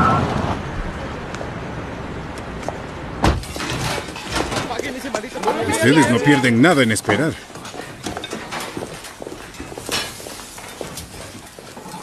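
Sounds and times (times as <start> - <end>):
footsteps: 2.4 - 12.0.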